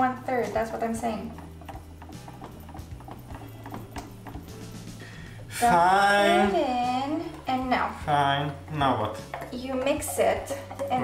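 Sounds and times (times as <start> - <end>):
whisk clicking against bowl: 0.0 - 5.0, 7.2 - 11.0
quiet background music: 0.0 - 11.0.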